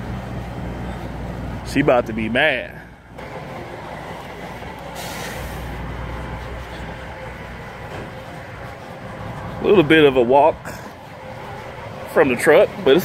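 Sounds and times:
diesel trucks idling: 0:00.0 - 0:13.0
brief hiss: 0:04.9 - 0:05.7.

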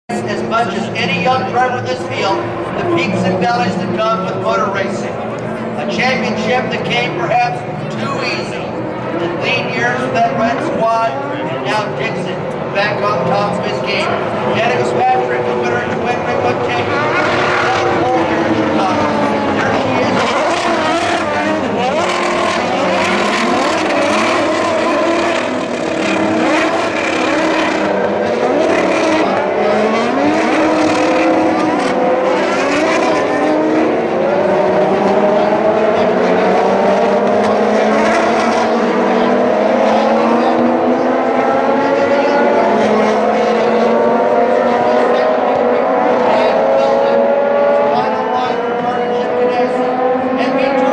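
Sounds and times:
race car engines passing: 0:00.1 - 0:50.9.

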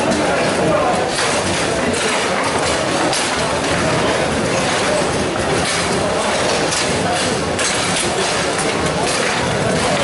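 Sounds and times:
busy hall noise: 0:00.0 - 0:10.0
foosball rods clacking: 0:00.0 - 0:10.0.

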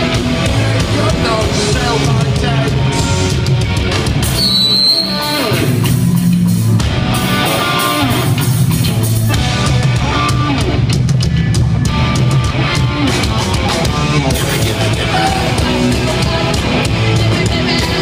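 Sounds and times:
live punk rock band: 0:00.0 - 0:18.0.

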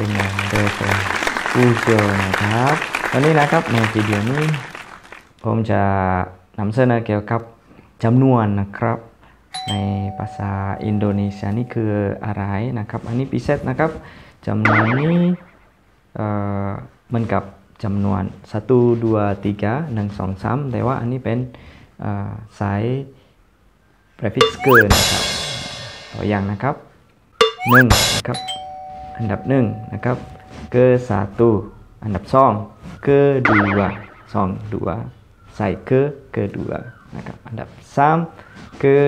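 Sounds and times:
voice: 0:00.0 - 0:04.6, 0:09.6 - 0:15.4, 0:24.4 - 0:25.2, 0:26.2 - 0:26.8, 0:27.6 - 0:28.4, 0:29.2 - 0:39.0
bell-like chime ringing: 0:09.6 - 0:11.8, 0:24.4 - 0:26.1, 0:27.4 - 0:31.0
bright bell-like chime: 0:09.6 - 0:11.8, 0:24.4 - 0:25.2
person speaking: 0:09.6 - 0:11.9, 0:24.4 - 0:25.2, 0:27.5 - 0:28.4
steady held tone: 0:14.7 - 0:15.5, 0:24.4 - 0:26.4, 0:27.4 - 0:31.0, 0:33.5 - 0:34.7.

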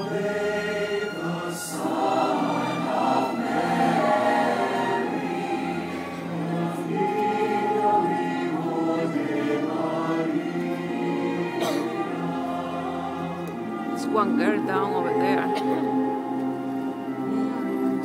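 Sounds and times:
massed choir singing chords: 0:00.0 - 0:18.0.

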